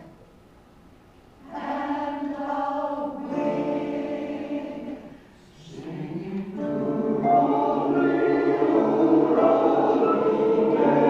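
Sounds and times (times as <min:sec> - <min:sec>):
mixed choir singing: 0:01.4 - 0:11.0.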